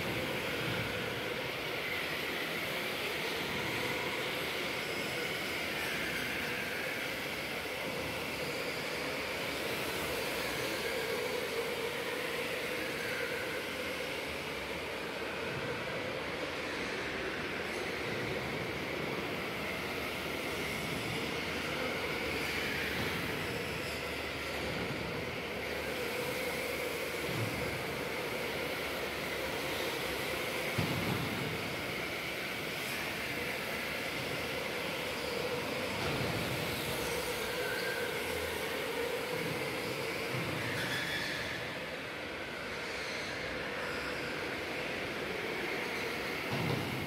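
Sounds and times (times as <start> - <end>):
electric go-kart motor whine: 0.0 - 46.9.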